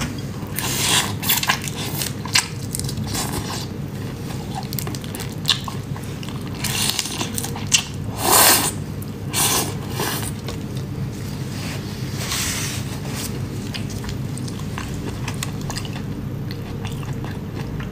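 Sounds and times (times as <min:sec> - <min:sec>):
steady low hum: 0:00.0 - 0:17.9.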